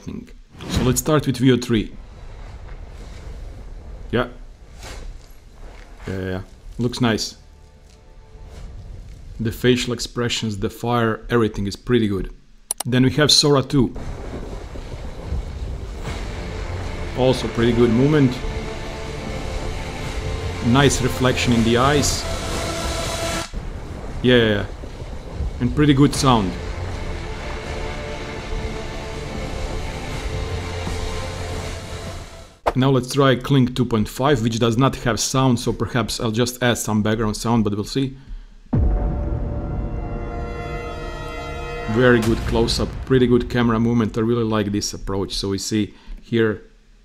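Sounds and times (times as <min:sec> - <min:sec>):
fire roaring: 0:00.5 - 0:10.7, 0:13.9 - 0:32.6
dense rushing rumble: 0:01.7 - 0:10.6, 0:14.0 - 0:32.6, 0:38.8 - 0:44.8.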